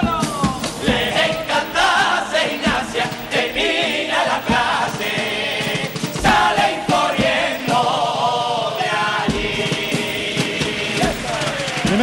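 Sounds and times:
male chorus singing: 0:00.0 - 0:12.0.

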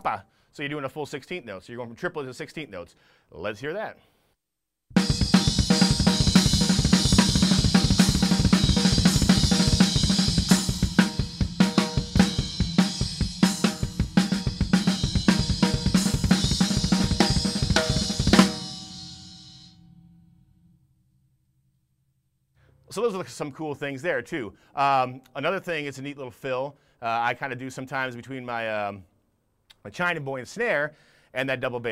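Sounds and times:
fast drum kit playing: 0:04.9 - 0:19.7
cymbal crash ringing: 0:05.0 - 0:20.2.

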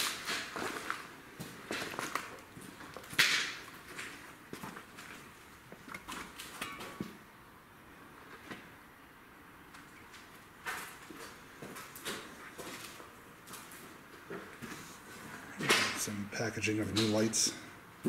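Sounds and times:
footsteps on concrete floor: 0:00.0 - 0:07.2, 0:10.6 - 0:15.4.

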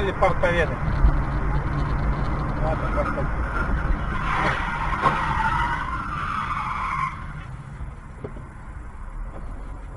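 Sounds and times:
low road rumble: 0:00.0 - 0:09.9
car tyres squealing: 0:01.0 - 0:07.6.

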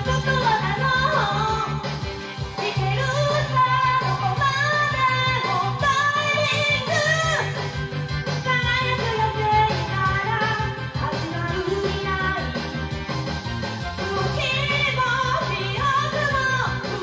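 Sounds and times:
woman singing into microphone: 0:00.0 - 0:01.9, 0:02.6 - 0:07.8, 0:08.4 - 0:12.6, 0:14.0 - 0:17.0
backing track with steady beat: 0:00.0 - 0:17.0.

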